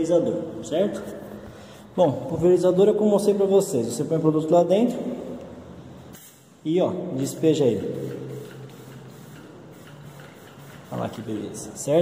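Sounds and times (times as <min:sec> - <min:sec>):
pressure sprayer hissing: 0:07.3 - 0:11.8.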